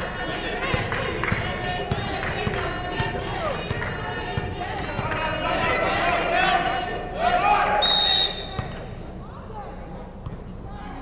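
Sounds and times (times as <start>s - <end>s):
players shouting: 0.0s - 8.6s.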